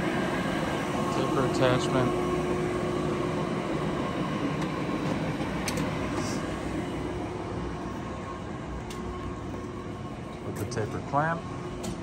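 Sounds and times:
machinery hum: 0:00.0 - 0:12.0.

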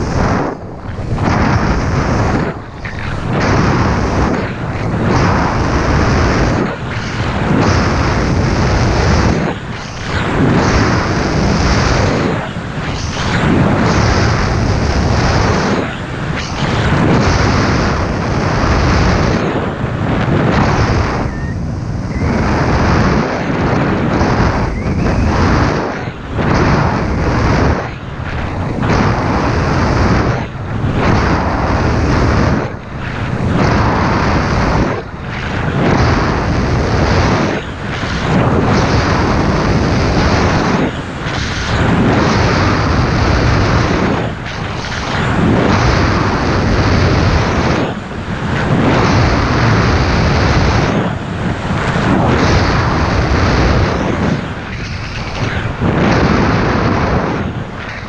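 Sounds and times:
wind rushing on microphone: 0:00.0 - 0:58.0.

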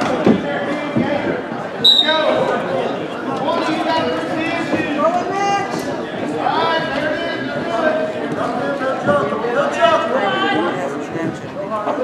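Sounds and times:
referee's whistle blast: 0:01.8 - 0:02.4.

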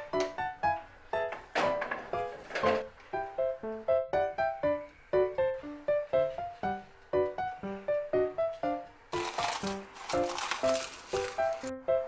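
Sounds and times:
cling film crinkling: 0:09.1 - 0:11.7.

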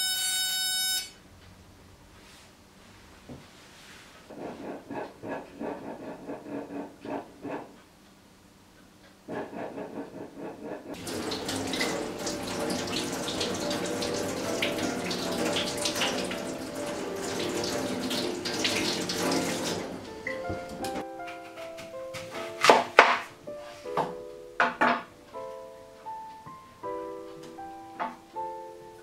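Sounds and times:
tap water running into sink: 0:10.9 - 0:21.0.

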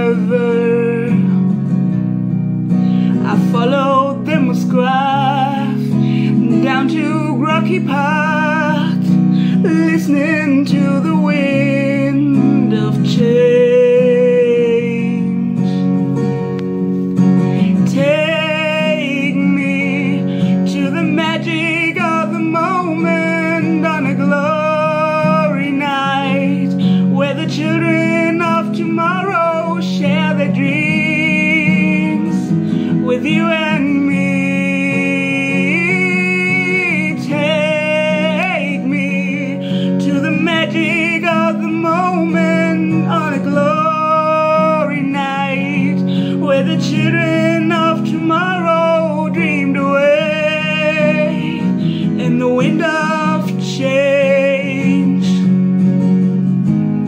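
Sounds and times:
woman singing with vibrato: 0:00.0 - 0:01.5, 0:03.0 - 0:16.0, 0:17.6 - 0:55.5
backing track with guitar: 0:00.0 - 0:57.0.

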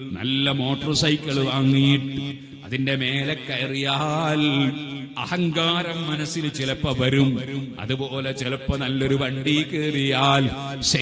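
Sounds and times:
man chanting over loudspeaker: 0:00.0 - 0:11.0.

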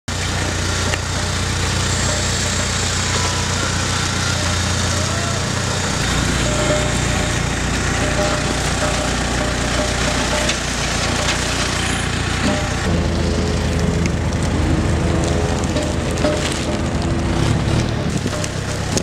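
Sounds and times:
forklift engine droning: 0:00.1 - 0:19.0
outdoor noise: 0:00.1 - 0:19.0.

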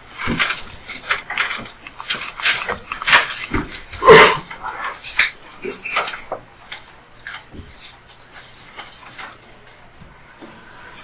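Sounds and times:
papers and folders shuffled: 0:00.0 - 0:11.0.

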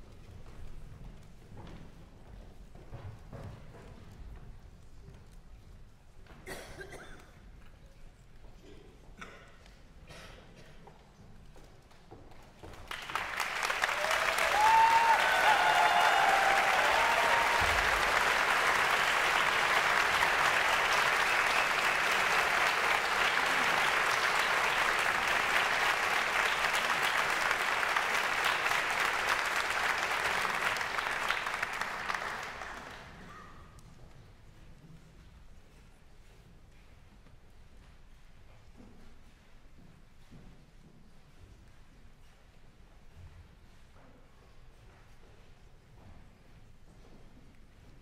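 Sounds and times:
audience applauding: 0:12.7 - 0:33.3.

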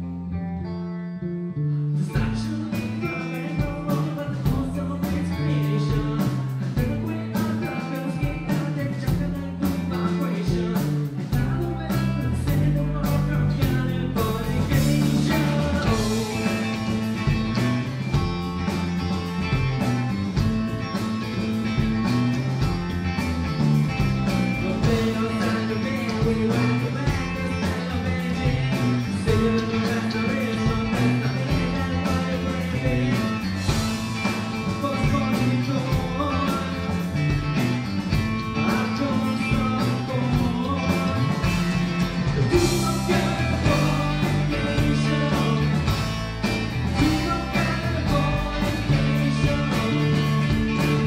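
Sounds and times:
distorted electric guitars: 0:00.0 - 0:51.0
person singing: 0:02.0 - 0:17.6, 0:24.5 - 0:51.0
steady drum beat: 0:02.2 - 0:51.0.

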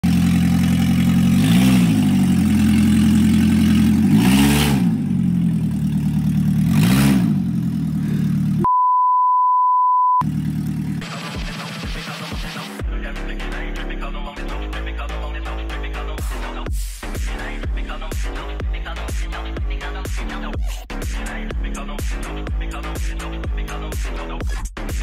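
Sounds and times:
car engine idling and revving: 0:00.0 - 0:08.7, 0:10.2 - 0:25.0
steady high beep tone: 0:08.6 - 0:10.2.

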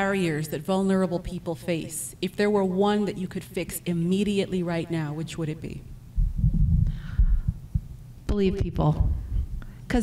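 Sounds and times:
microphone handling thumps: 0:06.2 - 0:08.0.

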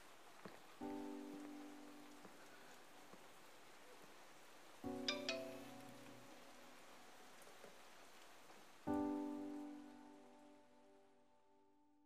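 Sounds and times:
faint hiss: 0:00.0 - 0:11.6
film music: 0:04.8 - 0:07.4.

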